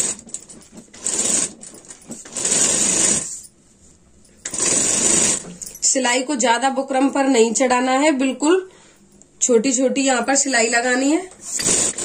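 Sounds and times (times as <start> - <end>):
sewing machine stitching: 0.0 - 3.4, 4.4 - 5.6, 11.4 - 12.0.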